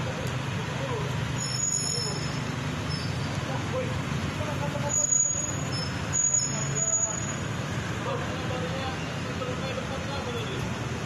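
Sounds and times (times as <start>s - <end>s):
vehicle engines running: 0.0s - 11.0s.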